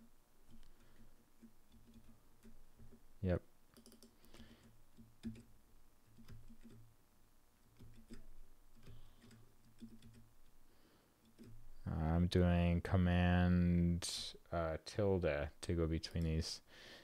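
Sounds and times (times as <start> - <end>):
keyboard and mouse clicks: 0.4 - 3.0, 3.7 - 6.9, 7.6 - 10.6, 11.2 - 11.8.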